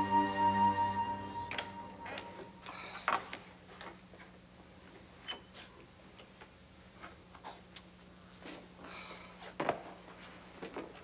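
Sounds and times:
footsteps on a floor: 1.5s - 4.4s.

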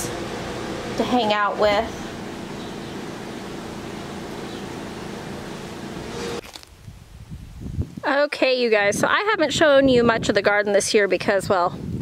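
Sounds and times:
mechanical hum with held tones: 0.0s - 6.4s.

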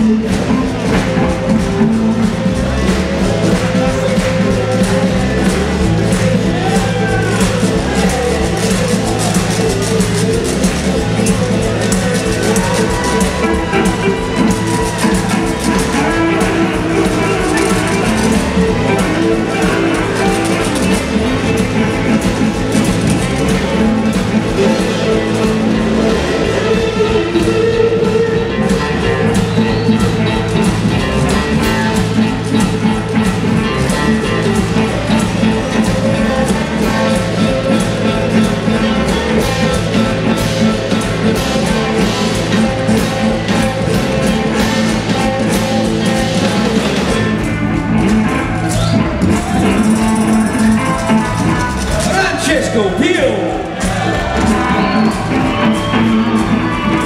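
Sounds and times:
blues band jamming: 0.0s - 57.0s
sliding guitar melody: 0.0s - 57.0s.

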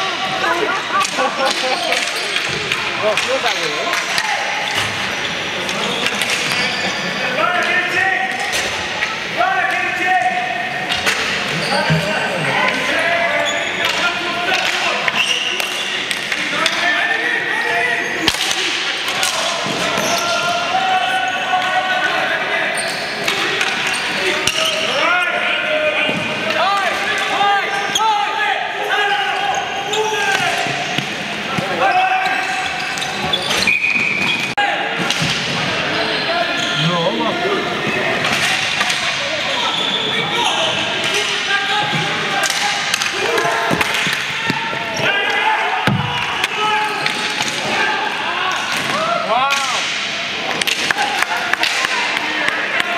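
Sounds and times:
people shouting and calling out: 0.0s - 33.7s, 34.4s - 52.9s
hockey sticks and ball clacking: 1.0s - 7.0s, 10.8s - 16.9s, 18.1s - 20.7s, 22.8s - 25.0s, 37.8s - 40.0s, 40.6s - 47.9s, 48.5s - 52.9s.

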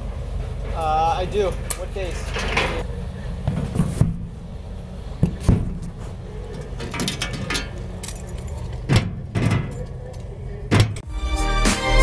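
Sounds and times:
metal locker rattling and clicking: 0.8s - 2.8s, 5.2s - 11.0s
locker door shutting: 5.2s - 10.1s, 10.7s - 11.0s.

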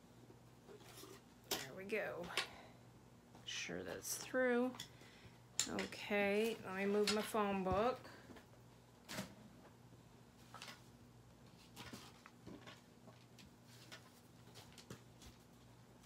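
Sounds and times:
low steady hum: 0.0s - 16.0s
paper and card rustling: 11.5s - 15.6s.

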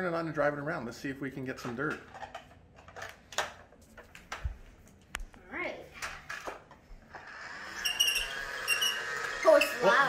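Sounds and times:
toy vacuum motor whirring: 7.1s - 10.0s
wheels squeaking: 7.8s - 10.0s.

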